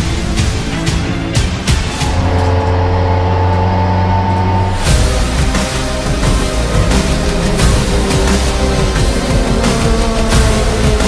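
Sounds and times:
race car engine droning: 0.0s - 11.0s.

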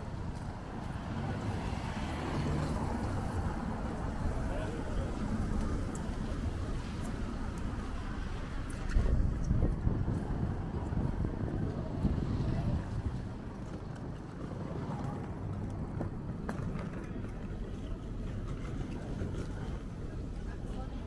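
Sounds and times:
low traffic rumble: 0.0s - 21.0s
passersby talking: 0.0s - 21.0s.

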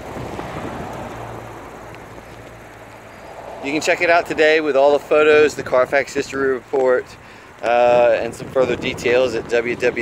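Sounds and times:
low vehicle engine hum: 0.0s - 10.0s.

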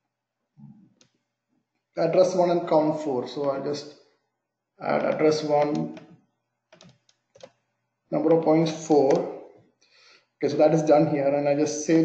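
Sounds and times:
computer keyboard keystrokes: 5.0s - 6.1s, 6.7s - 7.6s.

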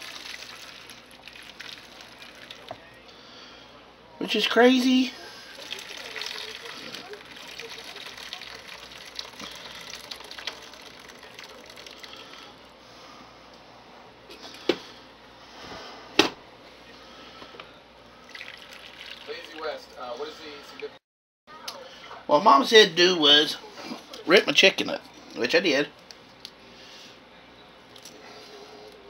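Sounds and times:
liquid pouring through strainer: 0.0s - 2.8s, 5.5s - 12.5s, 18.2s - 19.7s.

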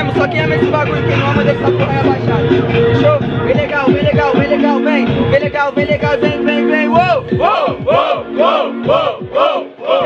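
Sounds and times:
hip-hop beat kick and bass: 0.0s - 10.0s
crowd shouting along: 7.4s - 10.0s.

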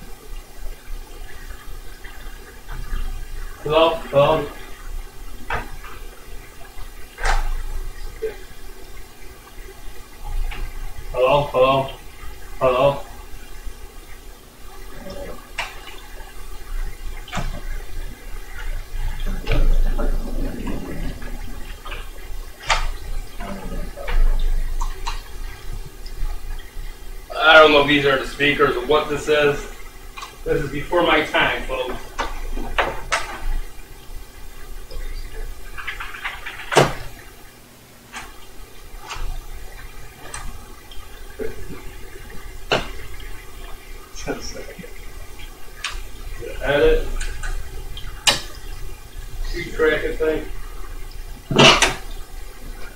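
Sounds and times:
steady low hum: 0.0s - 35.9s
low rumble: 19.2s - 22.5s.

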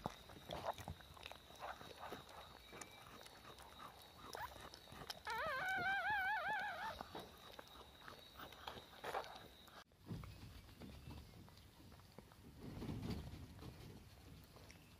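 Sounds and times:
faint clicks and rustles: 0.0s - 14.9s
dog whining: 2.6s - 9.5s.

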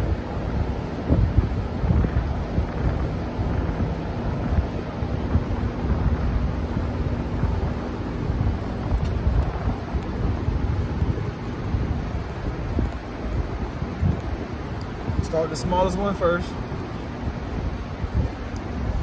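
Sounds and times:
faint steady hum: 0.0s - 19.0s
wind buffeting microphone: 0.0s - 19.0s.

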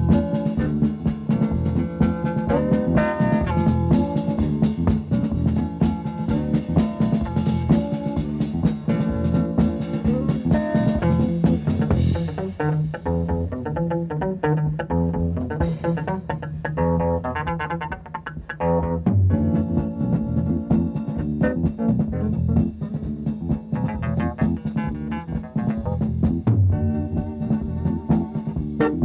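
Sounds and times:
bass guitar: 0.0s - 29.0s
drums: 0.0s - 29.0s.

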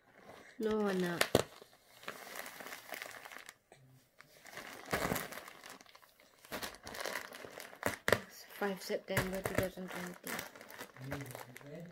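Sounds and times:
plastic sheeting crinkling: 0.5s - 3.6s, 4.2s - 11.9s.

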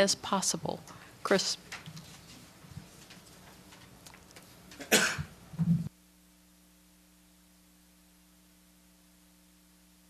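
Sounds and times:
faint steady hum: 0.0s - 10.0s
person coughing: 4.8s - 5.3s.

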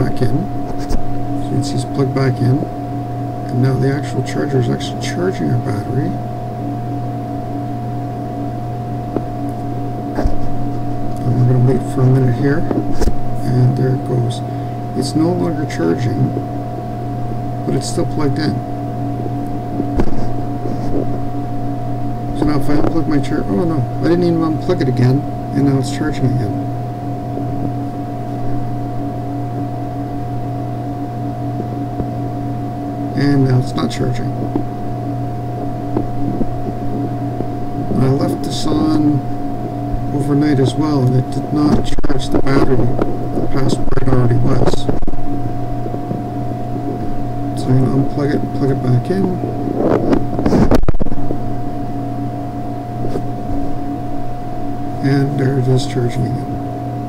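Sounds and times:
constant mid-pitched tone: 0.0s - 57.0s
steady machine hum: 0.0s - 57.0s.

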